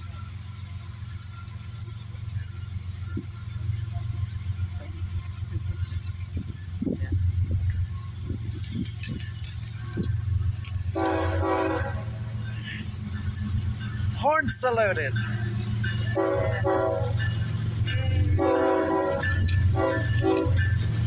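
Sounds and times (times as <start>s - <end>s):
diesel locomotive rumbling: 0.0s - 21.0s.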